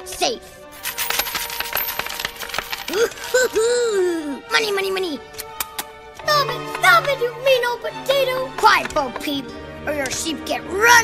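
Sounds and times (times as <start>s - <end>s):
coins pouring metallic clinks: 0.7s - 3.7s.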